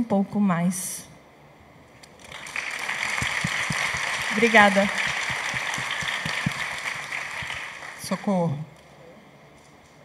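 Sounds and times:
audience applauding: 2.2s - 8.3s.

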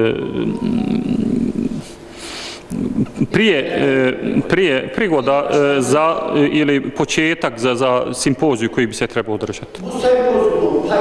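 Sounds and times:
breath: 1.8s - 2.7s.

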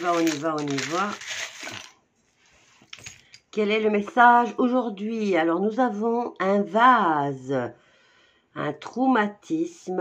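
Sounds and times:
charms rattling and clinking: 0.0s - 2.0s, 2.9s - 3.4s.

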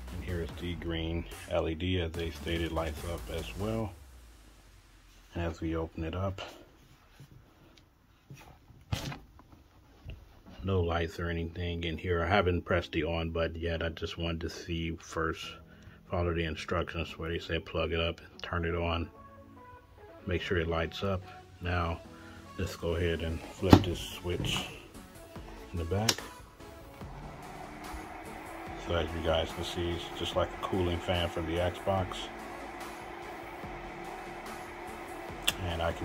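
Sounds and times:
cooling fan humming: 21.8s - 36.0s.

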